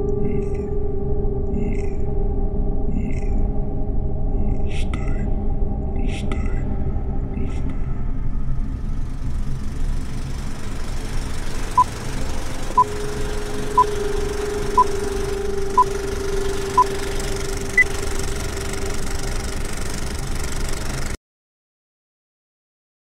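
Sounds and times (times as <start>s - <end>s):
low hum: 0.0s - 21.2s
rumbling whir: 8.1s - 21.2s
higher-pitched beep: 12.7s - 18.4s
short countdown beeps: 12.8s - 18.0s.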